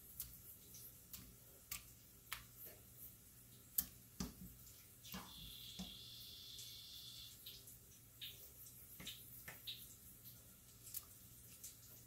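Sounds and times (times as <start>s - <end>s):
faint wet squishes: 0.0s - 12.0s.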